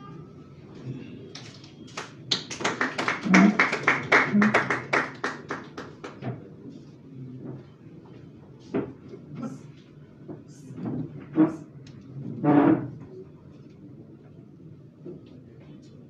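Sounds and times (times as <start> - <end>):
small audience clapping: 1.3 - 6.4.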